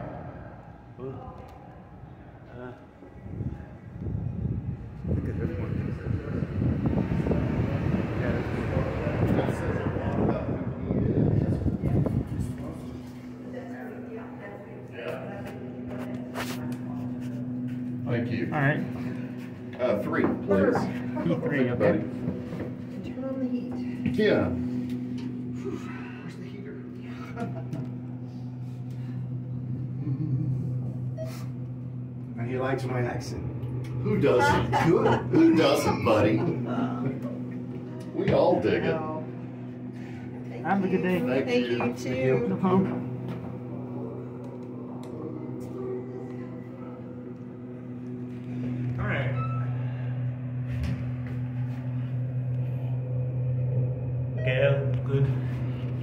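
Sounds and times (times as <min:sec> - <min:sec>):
elevator car low hum: 0:00.0 - 0:56.0.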